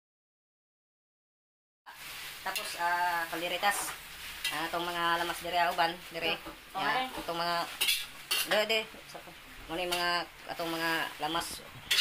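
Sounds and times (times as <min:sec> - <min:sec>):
cutlery and dishes clinking: 0:07.8 - 0:08.8.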